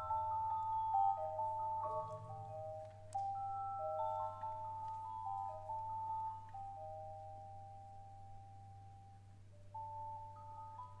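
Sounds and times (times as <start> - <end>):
soft mallet percussion notes: 0.0 - 11.0.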